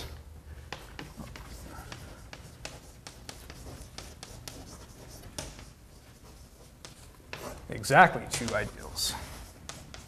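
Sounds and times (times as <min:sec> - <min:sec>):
faint room hum: 0:00.0 - 0:10.0
chalk scratching on board: 0:00.7 - 0:07.7, 0:08.4 - 0:10.0.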